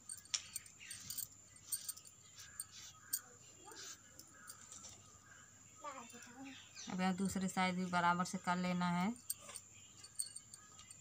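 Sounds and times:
bangles clinking: 0:00.0 - 0:05.1, 0:05.9 - 0:11.0.

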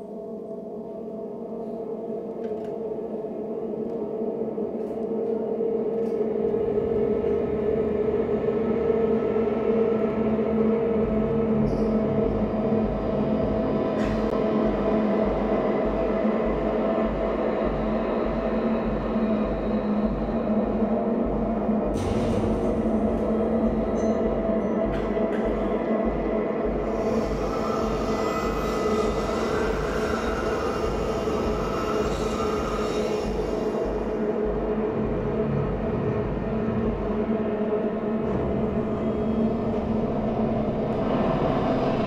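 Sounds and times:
low drone music: 0:00.0 - 0:42.0
deep pulsing throb: 0:06.0 - 0:42.0.

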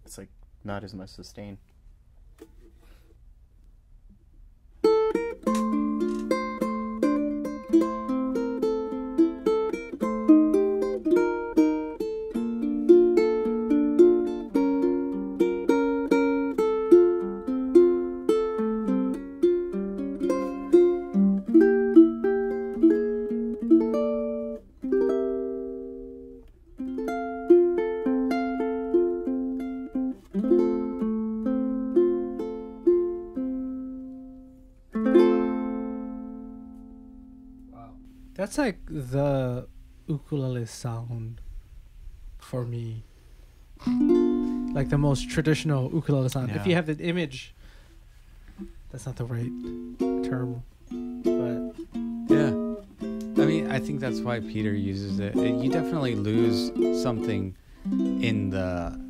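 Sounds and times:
fingerpicked ukulele: 0:04.8 - 0:39.9, 0:43.8 - 0:47.2, 0:48.4 - 0:59.0.

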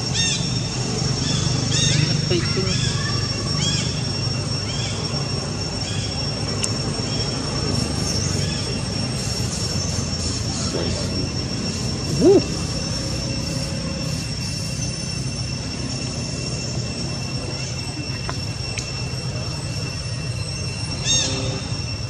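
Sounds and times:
high-pitched whine: 0:00.0 - 0:22.0
monkey call rising and falling: 0:10.2 - 0:14.1.

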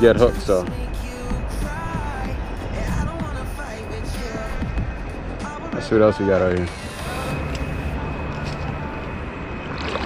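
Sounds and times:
wind on microphone: 0:00.0 - 0:05.9
river water flowing: 0:06.9 - 0:10.0.

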